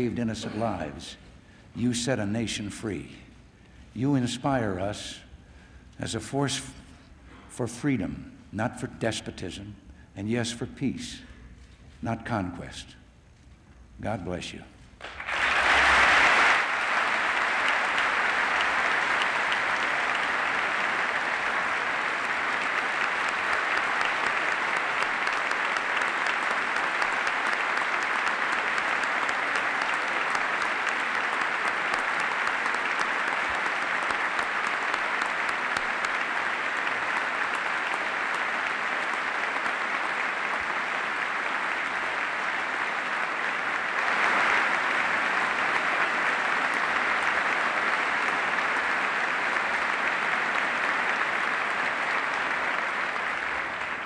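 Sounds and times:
crowd applause: 15.0 - 54.0.

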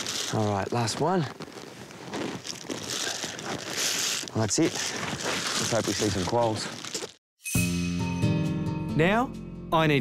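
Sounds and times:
paper towel crumpling: 0.0 - 7.2.

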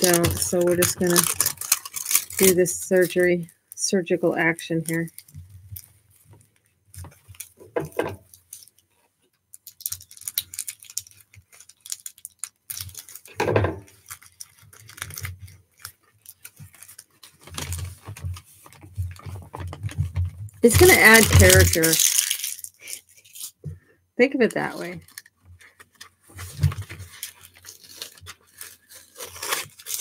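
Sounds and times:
paper rustling: 0.0 - 3.4, 9.6 - 23.6, 24.8 - 30.0
plastic film crinkling and tearing: 0.0 - 8.9, 9.5 - 23.7, 24.7 - 30.0.

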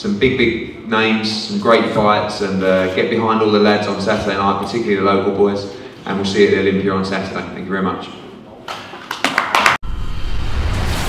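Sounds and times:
people clapping: 8.8 - 9.8.

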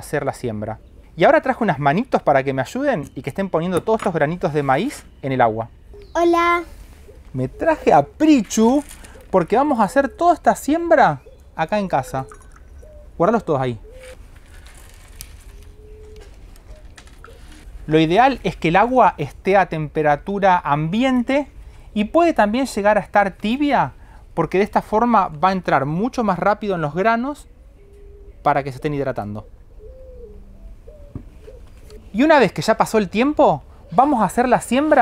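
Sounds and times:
bird cooing: 5.0 - 10.4, 11.1 - 17.8, 27.4 - 32.2, 33.6 - 34.2.

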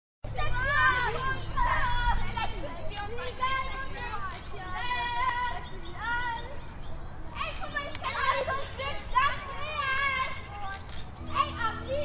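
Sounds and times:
children playing and shouting: 0.2 - 12.0.

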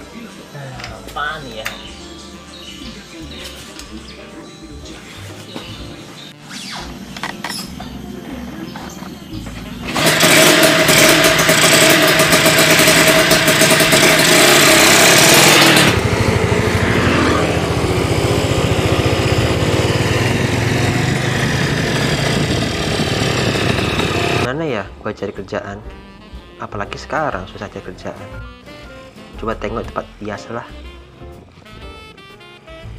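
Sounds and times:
dirt bike engine running: 6.9 - 24.5.

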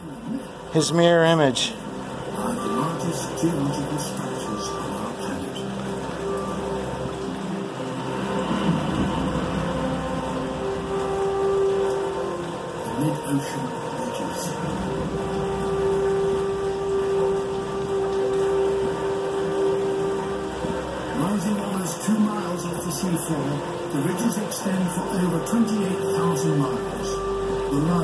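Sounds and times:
narrator's voice: 0.0 - 5.8, 12.8 - 14.7, 21.1 - 28.0
background music with held notes: 0.0 - 28.0.

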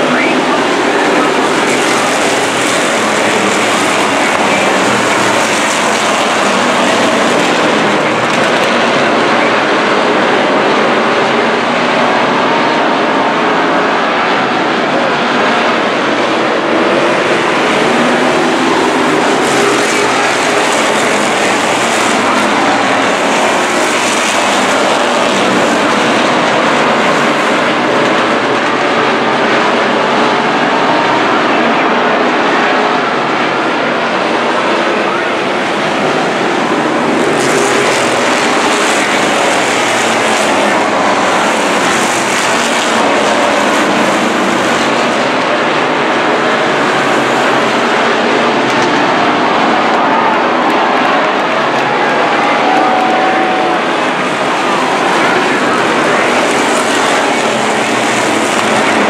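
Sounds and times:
race car engines roaring: 0.0 - 59.0.

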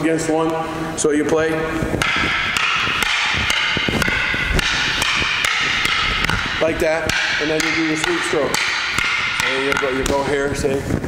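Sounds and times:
wooden sticks clacking: 2.0 - 10.7.

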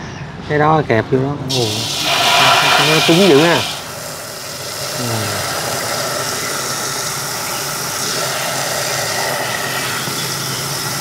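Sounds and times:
water gushing from hose: 1.5 - 11.0.

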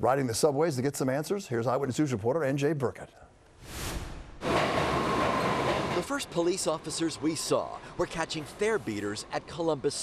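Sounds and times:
brief whoosh: 3.6 - 5.9
subway train running through station: 4.4 - 9.9.

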